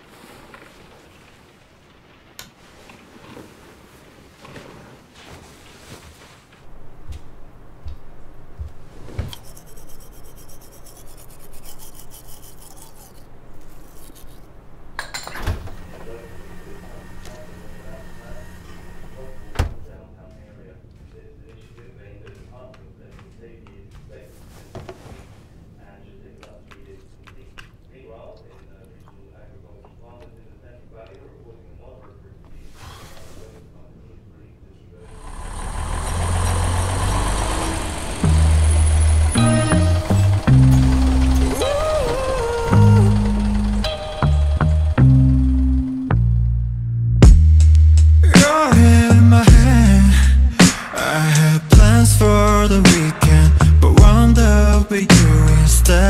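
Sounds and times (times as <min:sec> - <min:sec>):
teeth brushing: 0:09.3 - 0:14.5
diesel bus engine idling: 0:35.1 - 0:46.4.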